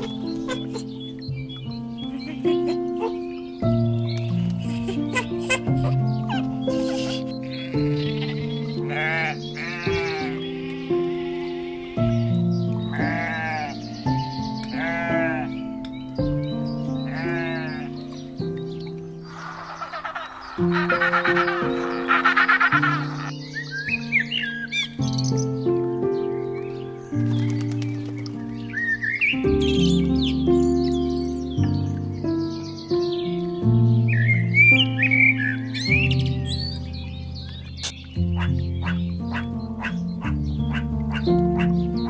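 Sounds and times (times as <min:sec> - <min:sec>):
penguin calling: 0:00.0 - 0:01.0, 0:04.6 - 0:12.3, 0:12.9 - 0:13.8, 0:14.7 - 0:15.6, 0:17.1 - 0:18.0, 0:19.3 - 0:23.3, 0:37.8 - 0:41.9
background music: 0:00.0 - 0:42.0
birds chirping and whistling: 0:00.0 - 0:42.0
sheep bleating: 0:06.9 - 0:12.1, 0:12.9 - 0:13.9, 0:14.7 - 0:15.6, 0:17.1 - 0:18.0.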